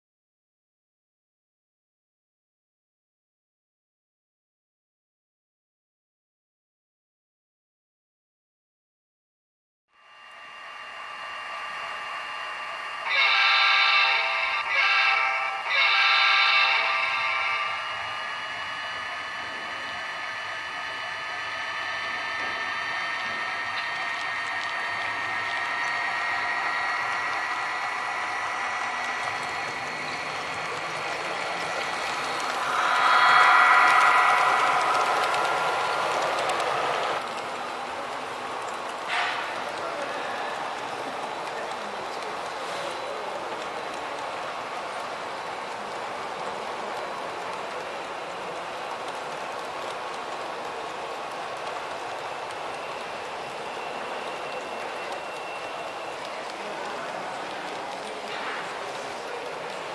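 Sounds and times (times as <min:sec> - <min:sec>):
model locomotive motor whine: 0:09.9 - 0:59.9
locomotive horn: 0:13.1 - 0:17.9.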